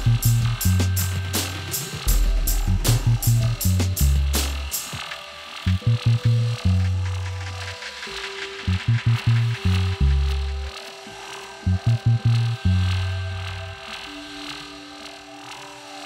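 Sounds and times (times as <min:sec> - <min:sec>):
deep bass stabs: 0:00.0 - 0:04.8, 0:08.7 - 0:10.7
sustained high synth tones: 0:00.0 - 0:16.0.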